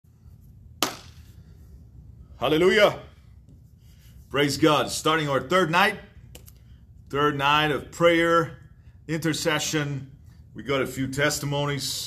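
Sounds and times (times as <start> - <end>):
sharp hand clap: 0.8 - 1.2.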